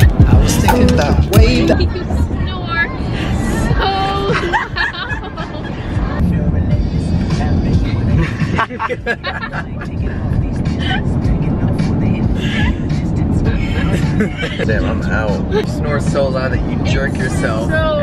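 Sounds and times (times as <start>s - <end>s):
background music: 0.0s - 2.5s, 3.3s - 18.0s
road rumble: 0.0s - 18.0s
teenagers laughing and chattering: 0.5s - 6.2s, 7.7s - 11.2s, 12.4s - 16.2s.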